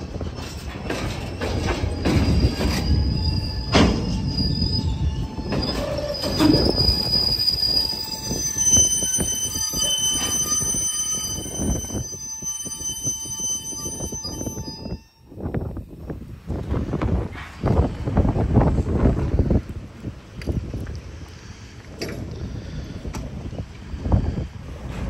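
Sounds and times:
train wheels squealing: 0:00.0 - 0:15.4
train wheels rumbling on rails: 0:00.0 - 0:25.0.

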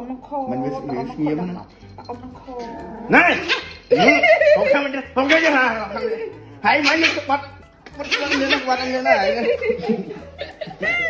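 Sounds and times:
puppy whining: 0:00.5 - 0:04.2
puppy yelping: 0:02.0 - 0:04.2, 0:05.2 - 0:06.0, 0:06.7 - 0:09.1.

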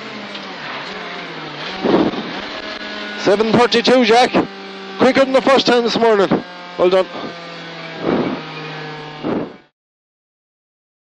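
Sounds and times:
car engine running inside cabin: 0:00.0 - 0:09.7.

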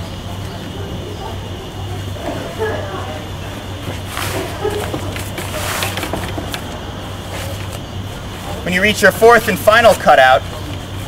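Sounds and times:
low hum: 0:00.0 - 0:09.8
fabric rustling on metal bow: 0:04.0 - 0:06.7.

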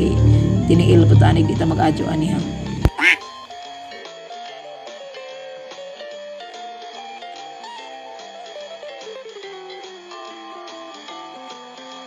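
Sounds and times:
person talking: 0:00.0 - 0:03.2
plucked guitar music: 0:00.0 - 0:03.3, 0:03.9 - 0:11.4
duck quack sound effect: 0:02.8 - 0:03.2.

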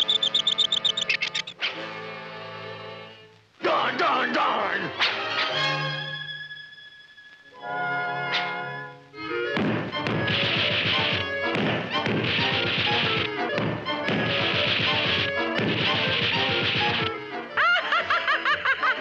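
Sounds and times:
music: 0:00.0 - 0:19.0
cartoon rapid whacking hits: 0:09.6 - 0:17.1
cartoon character laughing: 0:17.6 - 0:19.0.

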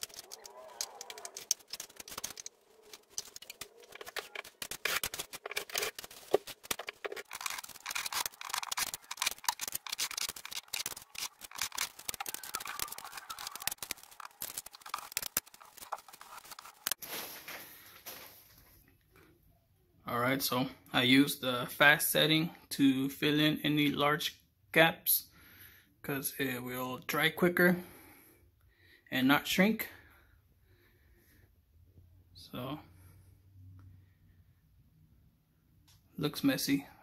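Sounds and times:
drywall knife scraping compound: 0:00.0 - 0:12.7.

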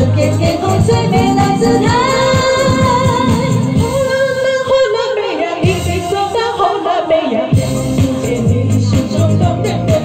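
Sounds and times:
backing track with steady beat: 0:00.0 - 0:10.0
woman singing into a microphone: 0:00.0 - 0:10.0.

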